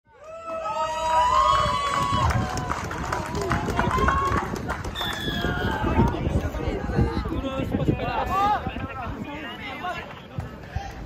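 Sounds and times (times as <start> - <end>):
voices shouting and calling out: 3.3 - 11.0.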